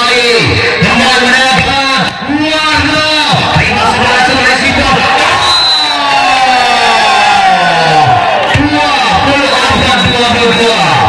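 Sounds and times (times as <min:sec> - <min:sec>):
spectators cheering: 0:00.9 - 0:11.0.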